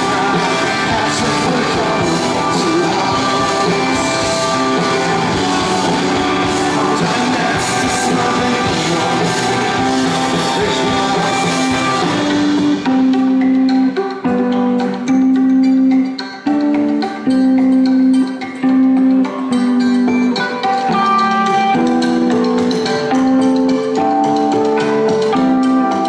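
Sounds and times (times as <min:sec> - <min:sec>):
electric guitar repeating held notes: 0:00.0 - 0:26.0
live rock band playing: 0:00.0 - 0:26.0.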